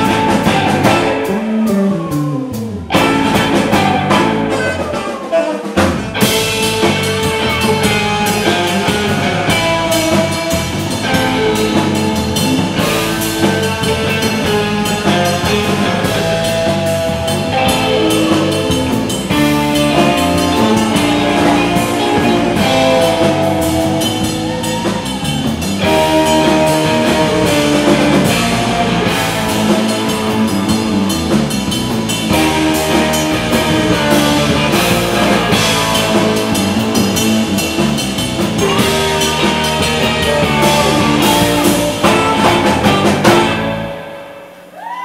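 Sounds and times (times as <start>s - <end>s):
saxophone: 0.0s - 6.6s, 38.6s - 44.1s
live rock band playing: 0.0s - 45.0s
audience whooping: 20.0s - 27.6s, 44.6s - 45.0s.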